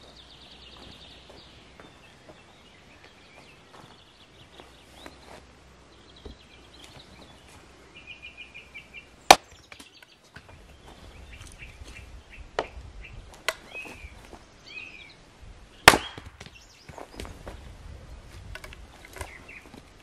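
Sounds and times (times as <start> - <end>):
birds chirping: 0.0 - 20.0
axe striking log: 9.3 - 9.8, 15.8 - 16.6.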